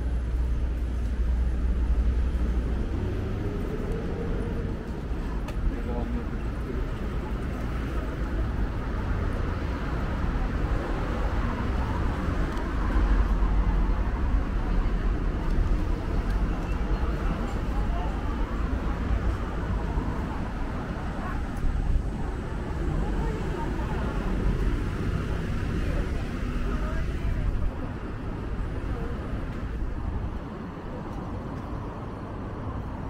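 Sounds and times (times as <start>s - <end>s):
cars passing: 0.0s - 33.0s.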